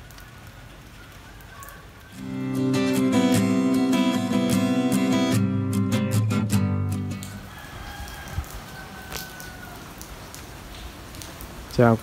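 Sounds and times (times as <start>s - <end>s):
water drip ticks: 0.0s - 2.2s, 6.9s - 7.5s, 8.1s - 12.0s
steady rain falling: 0.0s - 12.0s.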